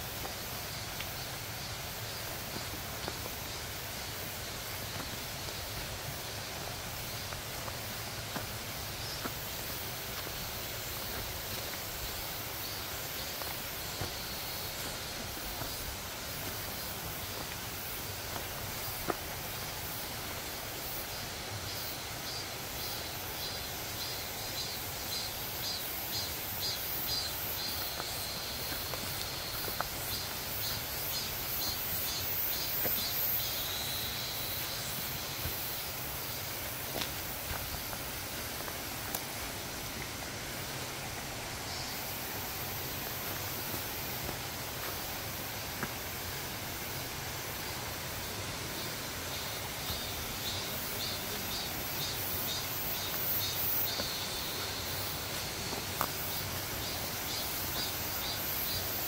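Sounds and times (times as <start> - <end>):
footsteps on dirt trail: 0.0 - 58.9
forest ambience: 0.0 - 59.0.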